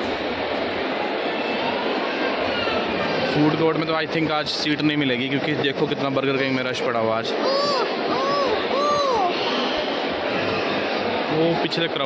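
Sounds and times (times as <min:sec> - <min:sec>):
crowd voices hubbub: 0:00.0 - 0:12.0.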